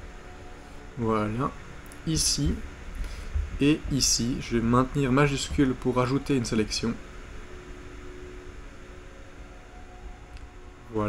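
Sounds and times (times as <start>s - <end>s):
faint hum: 0.0s - 11.0s
low hiss: 0.0s - 11.0s.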